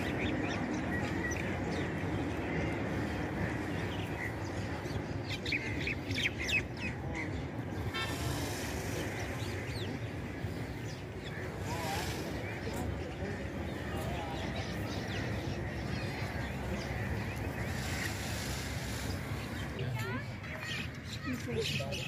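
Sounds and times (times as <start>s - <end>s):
murmur of voices: 0.0s - 22.0s.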